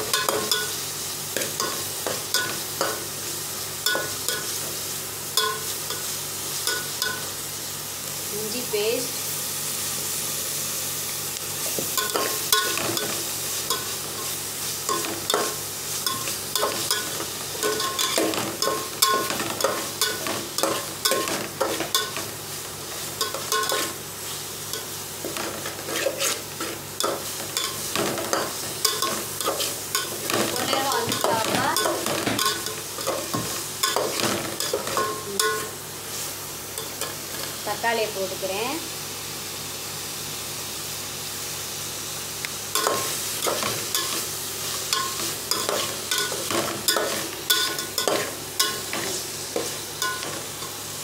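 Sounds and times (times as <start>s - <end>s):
onions sizzling in hot oil: 0.0s - 51.0s
metal spatula scraping a pot: 25.7s - 26.8s.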